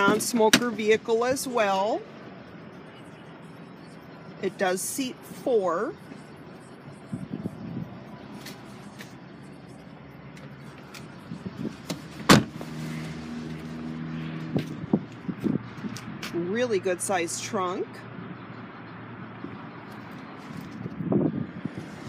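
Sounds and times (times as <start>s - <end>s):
car door clunk: 11.8s - 12.6s.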